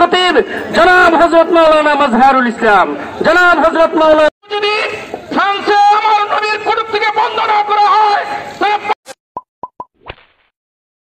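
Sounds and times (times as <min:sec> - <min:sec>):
man speaking over loudspeaker: 0:00.0 - 0:09.0
quick popping blips: 0:09.1 - 0:10.0.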